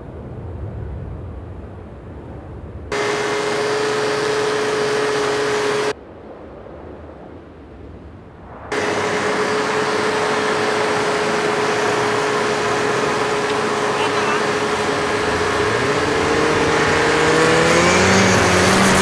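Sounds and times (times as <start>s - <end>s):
hissing track and snow noise: 0.0s - 19.0s
snowmobile engine running: 2.9s - 5.9s, 8.7s - 19.0s.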